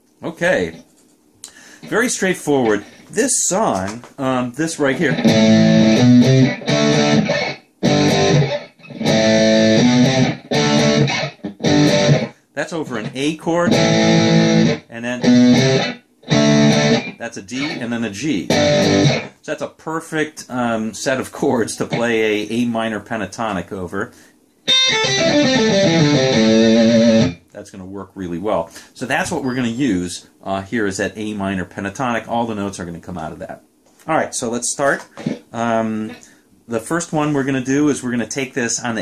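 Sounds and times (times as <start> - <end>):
distorted electric guitar chords: 4.8 - 19.4, 24.7 - 27.4.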